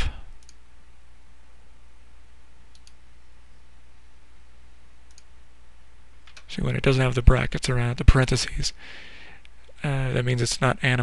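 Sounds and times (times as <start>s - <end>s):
low microphone hum: 0.0s - 11.0s
computer mouse clicking: 0.4s - 0.6s, 2.7s - 3.0s, 5.1s - 5.3s.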